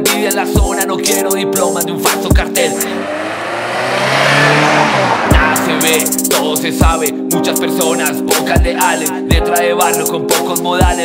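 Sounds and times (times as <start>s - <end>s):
road noise: 1.6s - 6.8s
car engine revving: 1.6s - 7.0s.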